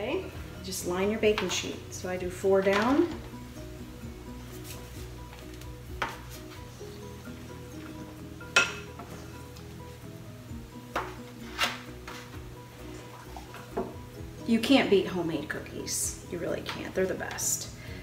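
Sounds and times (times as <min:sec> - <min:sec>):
soft background music: 0:00.0 - 0:18.0.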